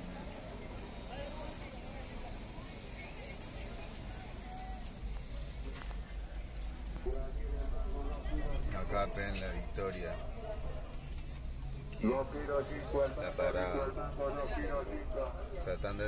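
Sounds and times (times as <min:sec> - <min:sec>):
chatter of many voices: 0:00.0 - 0:16.0
low car rumble: 0:00.0 - 0:16.0
traffic noise: 0:00.0 - 0:16.0.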